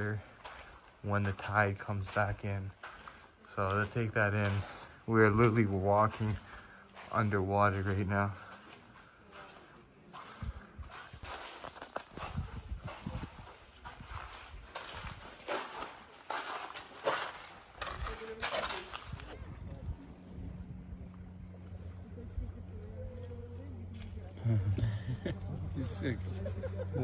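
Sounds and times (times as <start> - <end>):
footsteps on wet sand and rock: 0.0 - 19.4.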